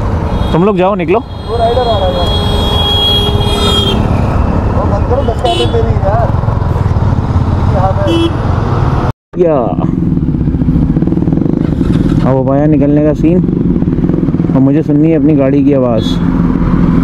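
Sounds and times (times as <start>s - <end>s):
motorcycles riding past: 2.2s - 9.1s, 9.7s - 17.0s
motorcycle engine running: 9.7s - 17.0s.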